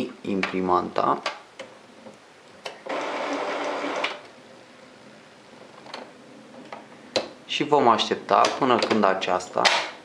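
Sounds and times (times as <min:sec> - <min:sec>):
printer carriage mechanism running: 0:02.9 - 0:04.2.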